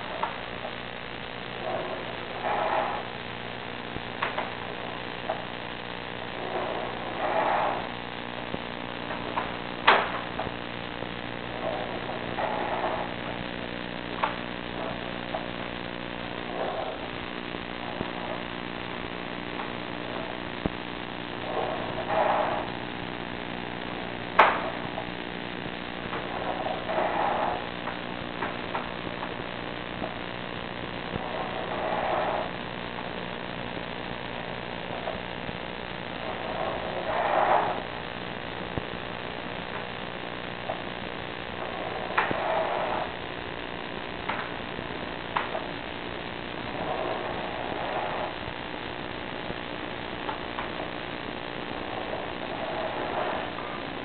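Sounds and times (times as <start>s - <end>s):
steady electrical hum: 0.0s - 54.0s
cable scraping rush in pipe: 1.6s - 5.5s, 6.2s - 10.6s, 11.4s - 15.8s, 16.4s - 20.6s, 21.4s - 23.0s, 26.1s - 30.4s, 31.0s - 33.4s, 34.6s - 38.3s, 40.6s - 43.3s, 46.6s - 49.1s, 51.8s - 54.0s.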